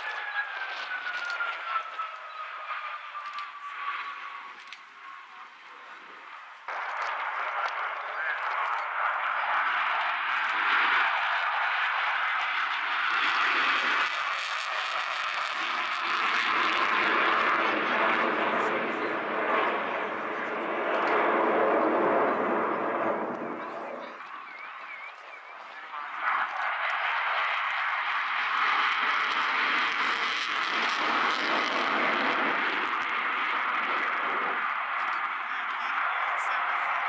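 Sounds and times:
jet engine roar: 0.0s - 37.0s.

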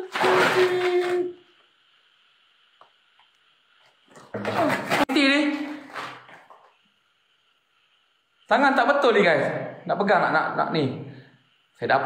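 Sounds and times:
faint steady hiss: 0.0s - 12.0s
loud humming tone with hiss: 0.0s - 12.0s.

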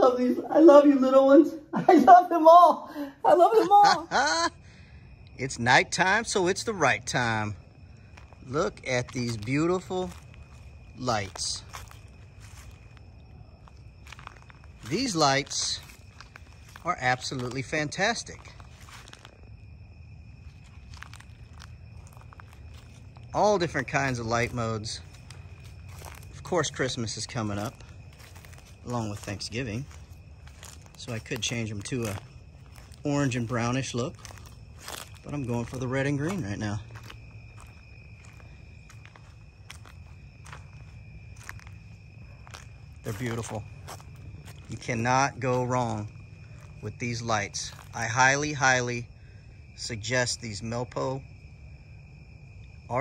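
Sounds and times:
high-pitched insect drone: 0.0s - 53.0s
footsteps on grass: 5.8s - 49.0s.

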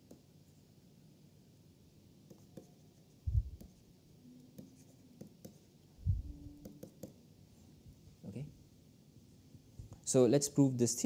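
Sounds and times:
stylus tapping and scratching on tablet: 0.0s - 0.5s, 2.2s - 5.8s, 6.4s - 7.2s
soft low thump: 3.3s - 3.6s.

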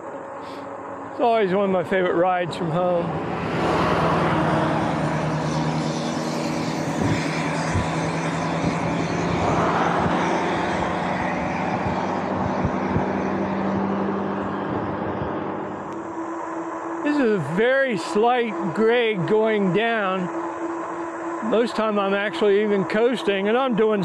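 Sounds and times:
motor vehicles passing: 0.0s - 24.0s
steady low hum: 0.0s - 24.0s
wind and tyre rush: 0.0s - 24.0s.

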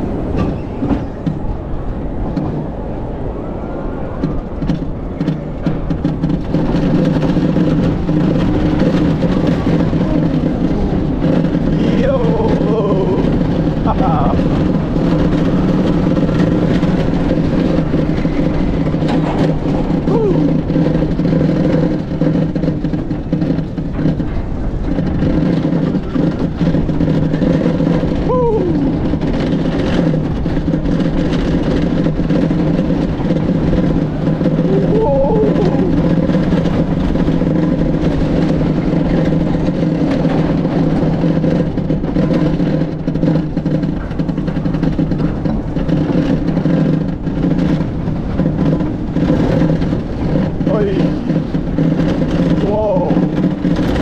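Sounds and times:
wheel squeals: 0.0s - 1.6s, 3.4s - 54.0s
coaster wheels rumbling: 0.0s - 54.0s.

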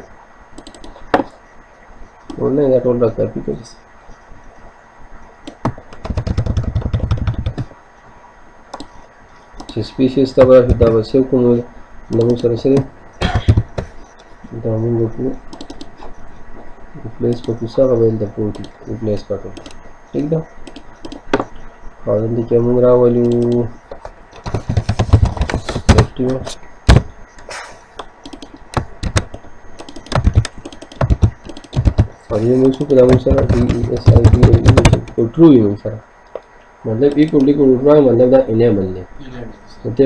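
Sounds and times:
computer keyboard keys clicking: 0.6s - 1.2s, 5.4s - 7.7s, 8.7s - 8.9s, 12.1s - 14.0s, 15.5s - 16.1s, 18.5s - 18.8s, 19.6s - 19.8s, 20.6s - 21.4s, 23.2s - 27.0s, 28.0s - 35.2s, 37.1s - 37.5s
mouse clicks: 0.6s - 1.4s, 8.7s - 9.0s, 15.5s - 16.1s, 20.6s - 21.6s, 26.9s - 32.1s.

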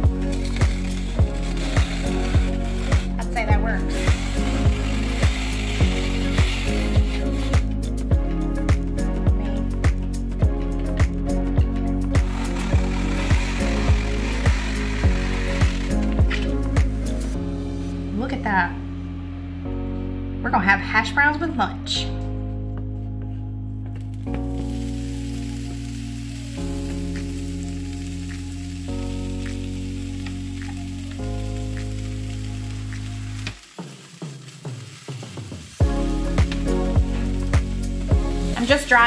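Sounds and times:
sausage sizzling in a skillet: 0.0s - 3.2s, 3.9s - 7.7s, 12.2s - 16.2s, 24.2s - 39.0s
background music with chords: 0.0s - 39.0s.

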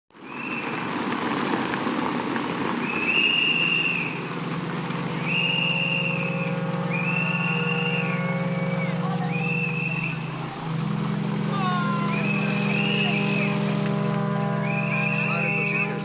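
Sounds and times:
car tyres on cobblestones: 0.1s - 16.0s
long whistle blasts: 0.2s - 0.8s, 2.8s - 4.4s, 5.0s - 16.0s
steady low drone: 3.2s - 16.0s.

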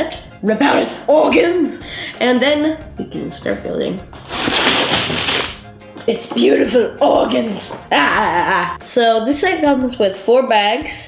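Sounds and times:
plastic bags tumbling onto table: 4.2s - 5.6s.

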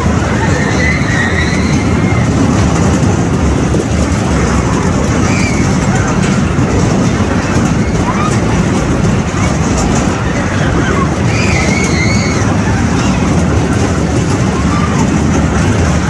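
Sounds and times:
faint voices calling: 0.0s - 16.0s
fairground ride rumbling: 0.0s - 16.0s.

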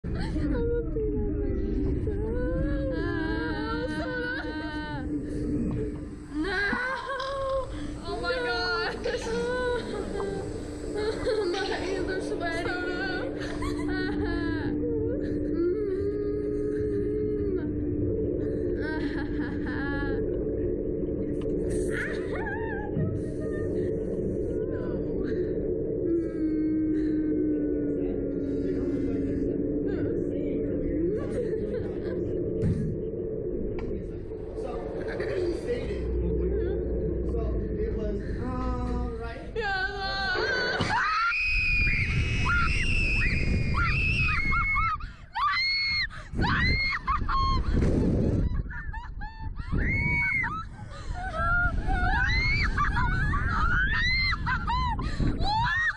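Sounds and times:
steady low drone: 0.0s - 55.9s
wind on microphone: 0.0s - 55.9s
girls screaming: 40.7s - 47.4s.

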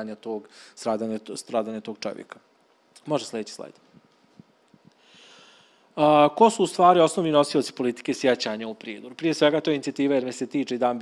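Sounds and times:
person breathing in: 5.0s - 5.9s.

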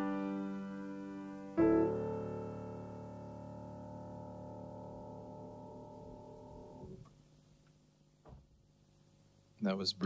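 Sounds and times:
grand piano chord: 0.0s - 7.0s.

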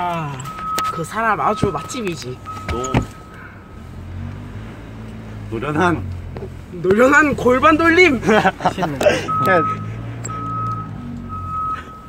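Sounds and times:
high electronic beeps: 0.4s - 3.3s, 9.2s - 12.0s.

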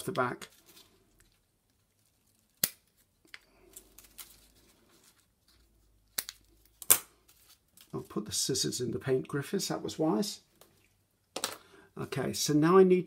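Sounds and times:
paper rustling: 3.6s - 5.9s.

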